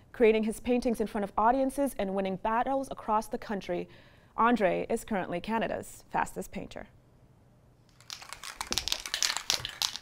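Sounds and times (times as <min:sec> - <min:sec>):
spray paint cans clicking and rattling: 0:07.9 - 0:10.0.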